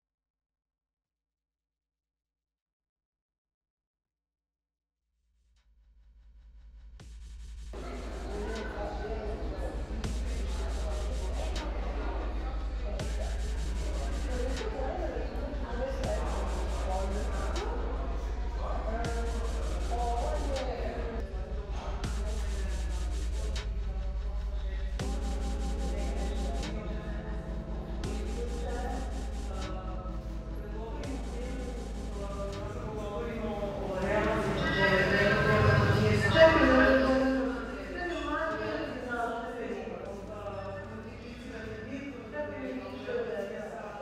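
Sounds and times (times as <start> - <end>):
low rumble: 6.8 - 38.0
steady low hum: 7.0 - 38.9
murmur of people talking: 7.7 - 44.0
sustained shifting tones: 25.0 - 38.8.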